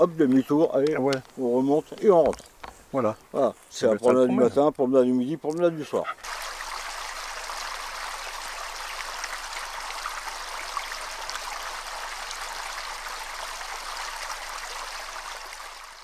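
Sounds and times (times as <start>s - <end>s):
stream running over rocks: 0.0s - 16.0s.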